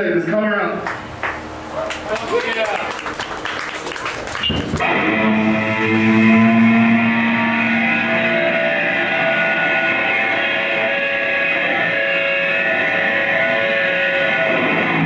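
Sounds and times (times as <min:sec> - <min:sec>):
bass guitar: 0:04.3 - 0:15.0
electric guitars ringing: 0:04.4 - 0:15.0.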